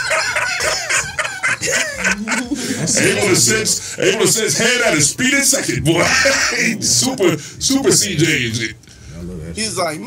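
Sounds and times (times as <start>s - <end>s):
men laughing hard: 0.0s - 3.9s.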